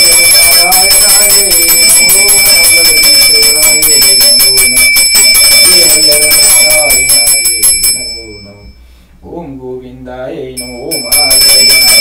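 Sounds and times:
hand bell ringing: 0.0s - 8.8s, 10.6s - 12.0s.

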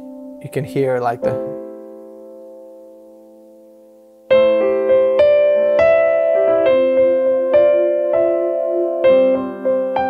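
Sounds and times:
digital piano held chord: 0.0s - 10.0s.

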